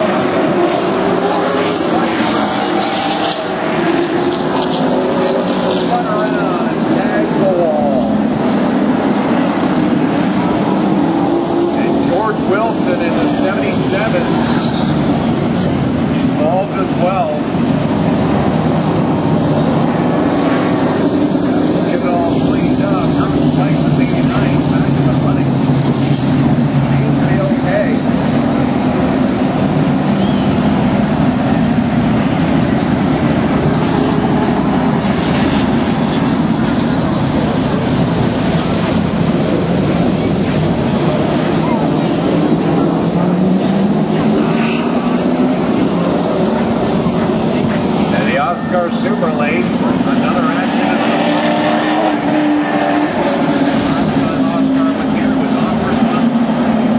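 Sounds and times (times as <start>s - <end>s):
race car engines passing: 0.0s - 56.9s
crowd voices: 18.8s - 56.9s.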